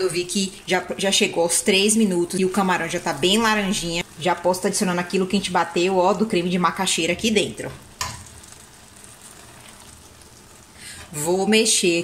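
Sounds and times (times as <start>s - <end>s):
sauce sizzling in a wok: 0.0s - 12.0s
thick cream being poured: 8.4s - 10.3s.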